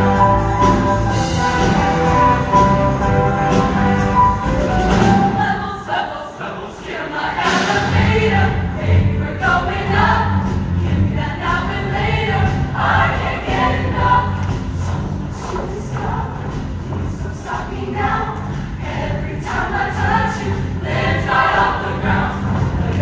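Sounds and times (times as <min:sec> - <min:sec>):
bass line: 0:00.0 - 0:05.3, 0:07.9 - 0:17.3
choir singing with accompaniment: 0:00.0 - 0:23.0.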